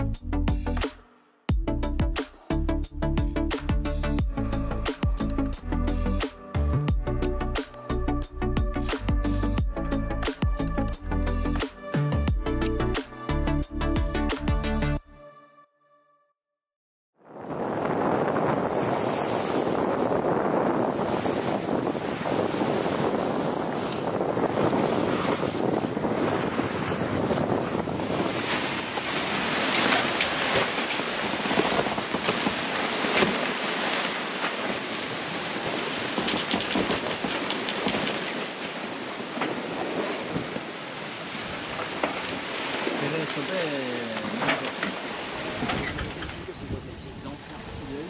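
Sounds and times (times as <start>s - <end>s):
wind and sea water rushing: 17.2s - 48.0s
wind buffeting microphone: 17.3s - 43.0s, 44.7s - 48.0s
bright hiss with fine crackles: 28.2s - 48.0s.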